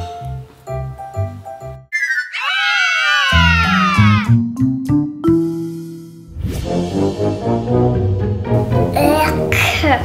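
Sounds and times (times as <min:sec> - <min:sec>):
cartoon sliding tones: 0:01.9 - 0:04.3.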